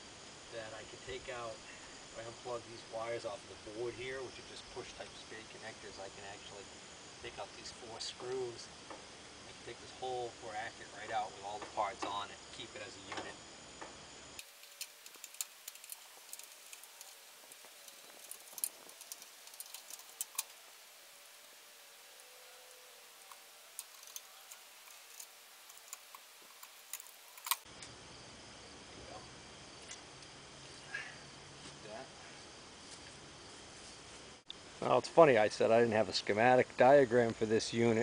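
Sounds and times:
metallic clicks of screws and tools: 0:14.4 - 0:20.6, 0:23.2 - 0:27.6.

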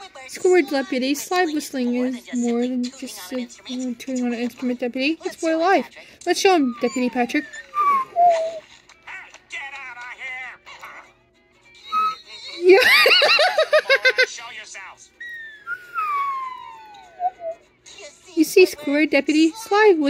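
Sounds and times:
slide whistle sliding: 0:11.9 - 0:12.2, 0:15.2 - 0:17.6.

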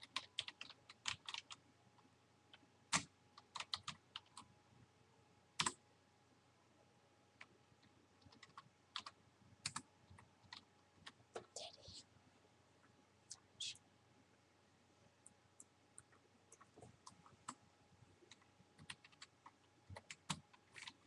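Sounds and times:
keyboard keystrokes and clicks: 0:00.0 - 0:01.6, 0:02.5 - 0:04.5, 0:05.6 - 0:05.8, 0:08.2 - 0:11.6, 0:18.3 - 0:21.0.

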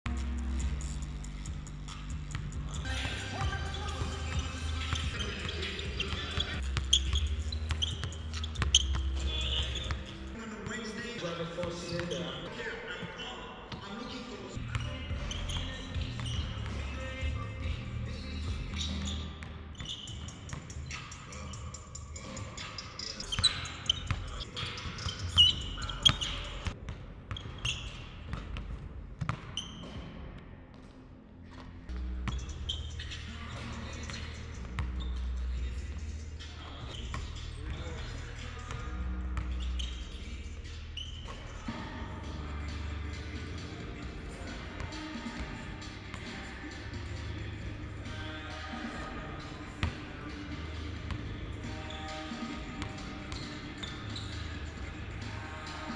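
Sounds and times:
background music with deep bass: 0:00.1 - 0:12.3, 0:14.6 - 0:26.8, 0:31.9 - 0:55.9
sneakers squeaking: 0:00.1 - 0:55.9.

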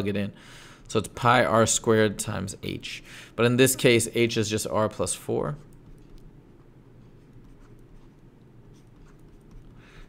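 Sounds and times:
low room hum: 0:00.0 - 0:10.0
stylus writing on tablet: 0:05.6 - 0:10.0.

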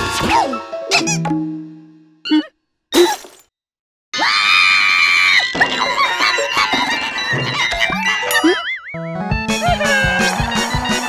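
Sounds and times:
cartoon scream: 0:04.2 - 0:05.5
cartoon crashes and zany effects: 0:04.9 - 0:08.9.

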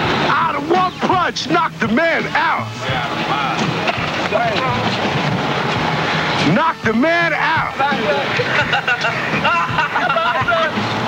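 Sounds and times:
dense rough noise: 0:00.0 - 0:11.0
men shouting and hollering: 0:00.0 - 0:11.0.

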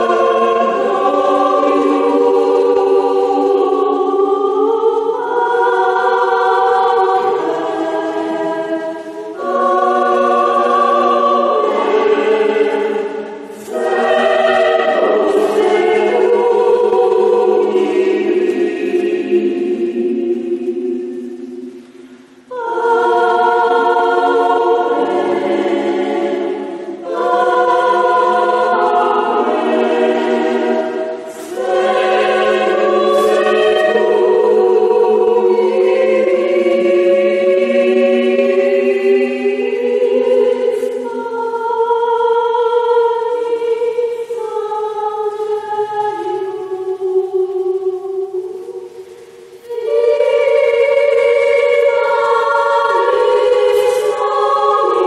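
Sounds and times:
choir singing a cappella: 0:00.0 - 0:55.0.

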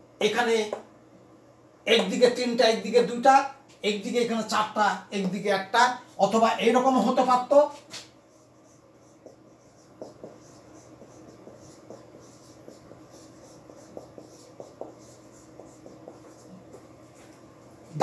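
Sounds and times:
marker writing on whiteboard: 0:01.9 - 0:02.5, 0:06.2 - 0:18.0.

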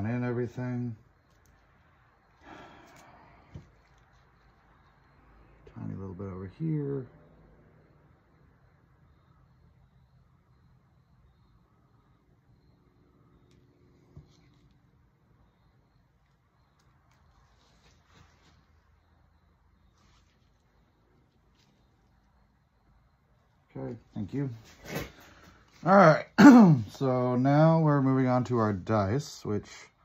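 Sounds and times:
faint low hum: 0:00.0 - 0:30.0.

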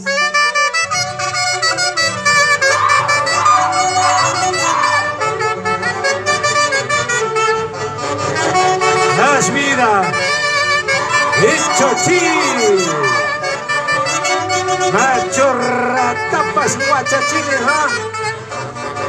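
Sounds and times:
folk orchestra with saxophones: 0:00.0 - 0:19.0.

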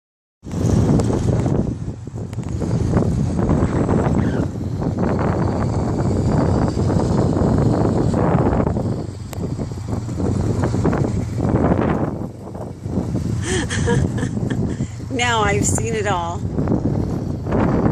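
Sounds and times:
electric scooter rumbling on asphalt: 0:00.4 - 0:17.9
wind noise on microphone: 0:00.4 - 0:17.9.

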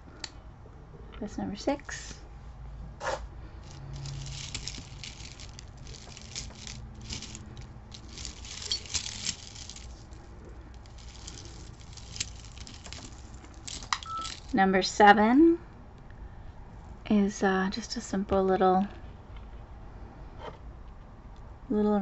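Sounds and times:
metal chains jingling: 0:03.6 - 0:14.6.

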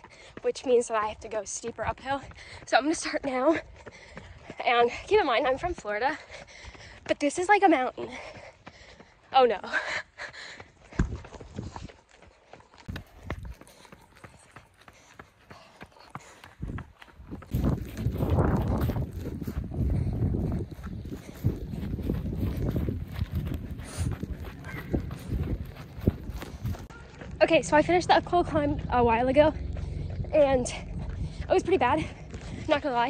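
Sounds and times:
running footsteps: 0:00.0 - 0:33.0
low rumble on microphone: 0:16.6 - 0:32.9.

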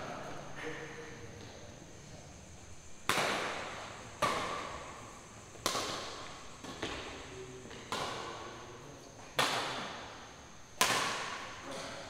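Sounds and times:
badminton rackets hitting shuttlecock: 0:03.1 - 0:04.9, 0:05.6 - 0:07.0, 0:07.7 - 0:08.6, 0:09.4 - 0:10.0, 0:10.8 - 0:11.6.

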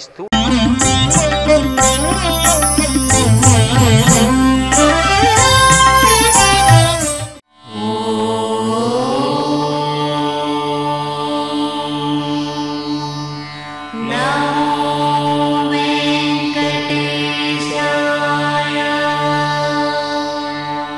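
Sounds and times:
chant-like held tones: 0:01.2 - 0:20.9.

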